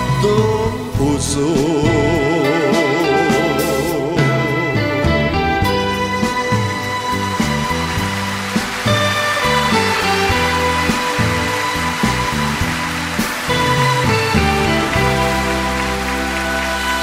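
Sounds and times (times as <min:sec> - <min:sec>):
orchestra with strings: 0:00.0 - 0:17.0
audience applause: 0:06.0 - 0:17.0.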